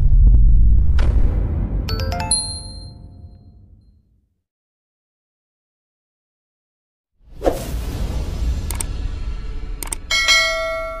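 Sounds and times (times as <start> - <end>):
notification bell chime: 1.9 - 3.3.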